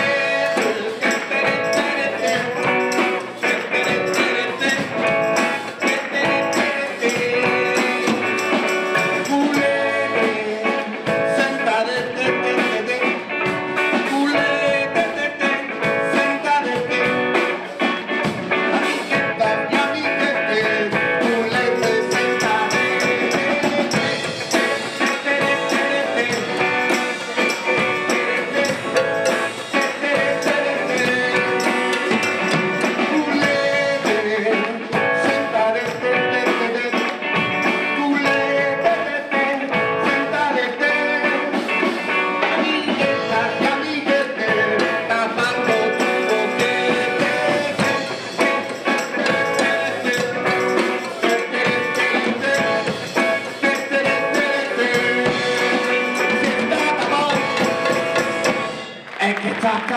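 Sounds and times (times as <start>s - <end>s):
drum kit: 0.0s - 59.9s
electric guitar: 0.0s - 59.9s
person singing: 0.0s - 59.9s.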